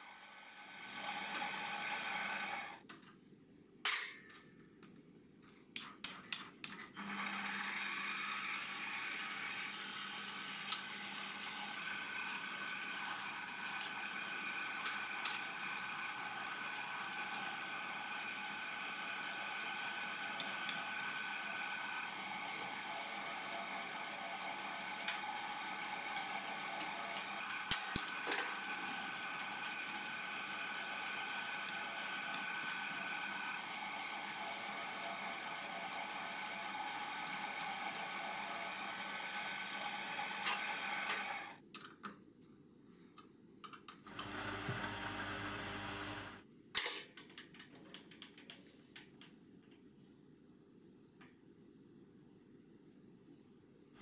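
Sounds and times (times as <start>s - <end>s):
lathe motor whine: 0.0s - 2.8s, 7.0s - 41.6s, 44.1s - 46.4s
tool cutting brass rod: 0.8s - 2.7s, 6.9s - 41.5s.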